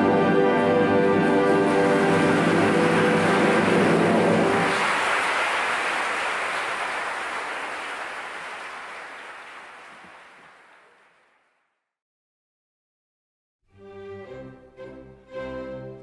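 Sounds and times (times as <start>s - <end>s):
orchestra holding final chord: 0.0s - 5.0s
audience applause: 0.3s - 11.5s.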